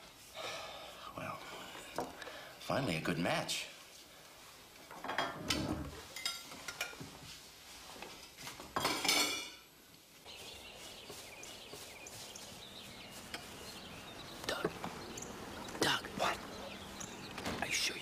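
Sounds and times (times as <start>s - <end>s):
quiet outdoor background: 0.0s - 18.0s
dishes and cutlery clinking: 4.9s - 7.2s, 8.1s - 9.7s.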